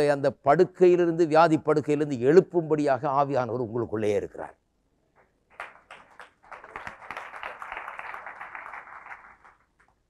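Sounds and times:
audience applauding: 0:05.5 - 0:10.0.

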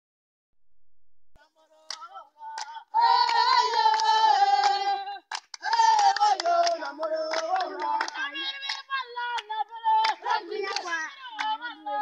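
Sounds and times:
young voices singing chant: 0:01.6 - 0:12.0
rhythmic hand clapping: 0:01.9 - 0:12.0.

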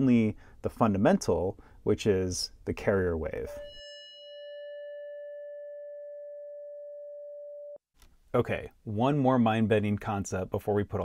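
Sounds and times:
steady synthesized sine tone: 0:03.5 - 0:07.8.

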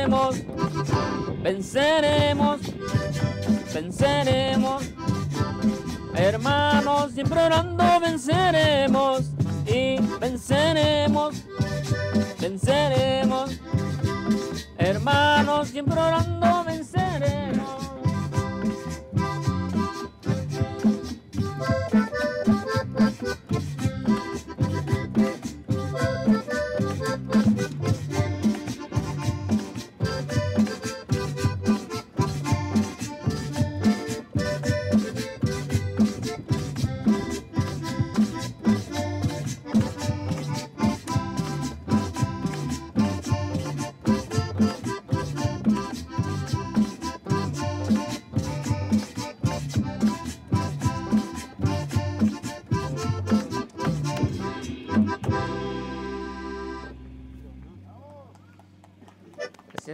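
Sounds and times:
accordion-like melody: 0:00.0 - 0:57.8, 0:59.2 - 0:59.9
electric bass: 0:00.0 - 0:58.5
drums: 0:00.0 - 0:59.6
guitar: 0:00.0 - 0:59.9.

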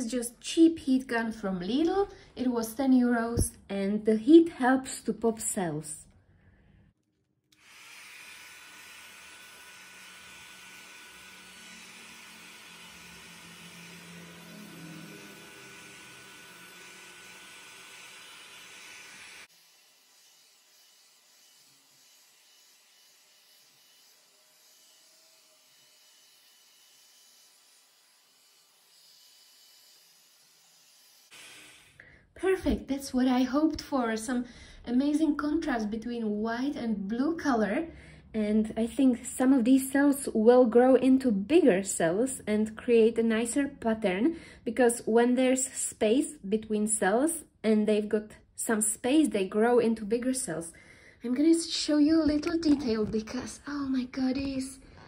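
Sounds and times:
heat gun blowing hiss: 0:07.6 - 0:27.2, 0:28.6 - 0:32.0.

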